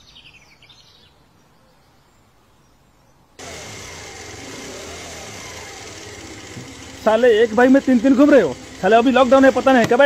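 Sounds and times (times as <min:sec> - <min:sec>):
motorcycle engine running: 0:03.4 - 0:10.0.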